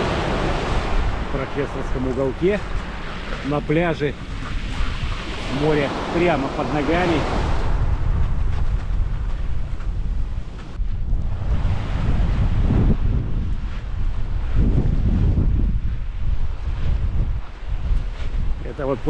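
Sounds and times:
waves breaking on pebble beach: 0:00.0 - 0:08.2
strong wind buffeting microphone: 0:00.0 - 0:19.0.

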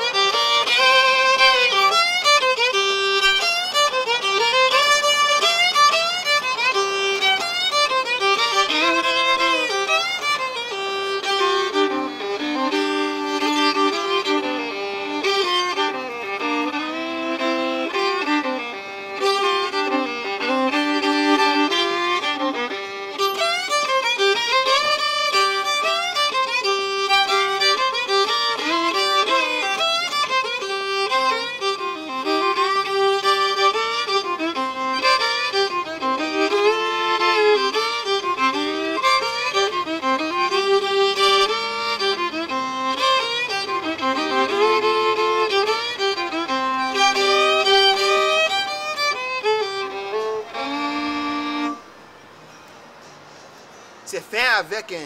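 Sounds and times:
fiddle playing with double stops: 0:00.0 - 0:55.0.

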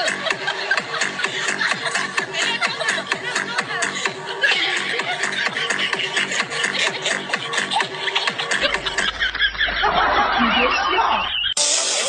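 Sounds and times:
background music with a beat: 0:00.0 - 0:10.3, 0:11.4 - 0:12.0
high-pitched laughter: 0:00.0 - 0:12.0.

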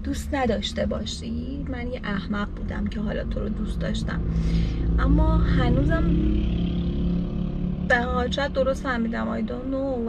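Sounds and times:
car cabin rumble: 0:00.0 - 0:06.9.

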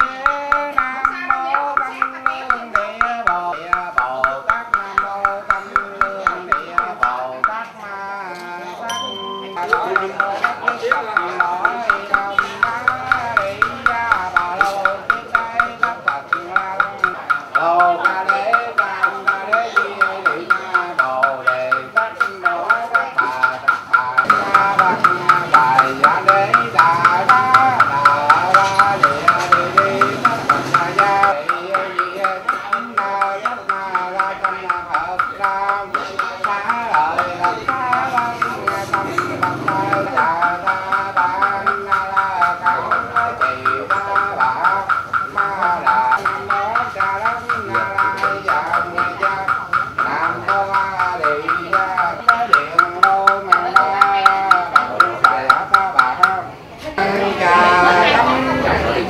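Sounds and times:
wooden fish knocking: 0:00.0 - 0:07.8, 0:09.6 - 0:56.5
chanting: 0:00.0 - 0:59.0.

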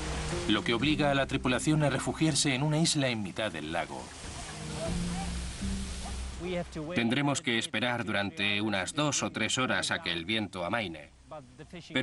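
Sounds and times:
low background music: 0:00.0 - 0:12.0
surf: 0:00.0 - 0:12.0
wind: 0:00.0 - 0:12.0.

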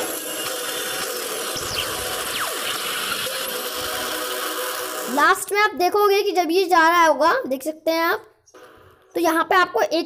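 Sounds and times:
steady electric crackle: 0:01.5 - 0:03.5.

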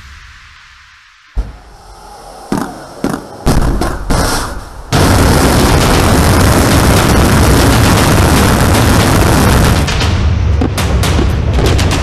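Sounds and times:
rocket blast with deep rushing roar: 0:00.0 - 0:10.7
sharp bangs: 0:01.4 - 0:12.0.

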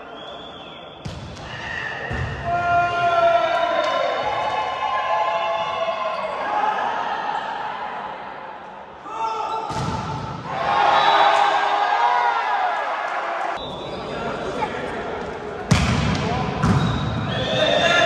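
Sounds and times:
players calling and shouting: 0:00.0 - 0:08.1, 0:08.9 - 0:18.0
volleyball smack: 0:09.7 - 0:10.2, 0:15.7 - 0:16.9.

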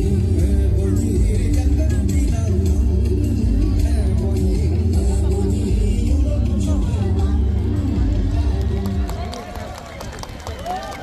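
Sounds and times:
loud bass-heavy music: 0:00.0 - 0:09.3
crowd chatter: 0:00.0 - 0:11.0.

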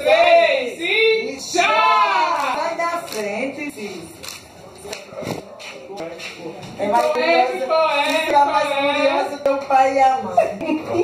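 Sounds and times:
group of people talking: 0:00.0 - 0:11.0.

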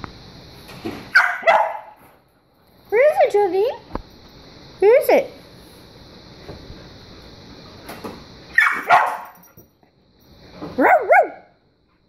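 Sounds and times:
dog barking: 0:01.1 - 0:02.0, 0:08.6 - 0:09.4, 0:10.8 - 0:11.6.

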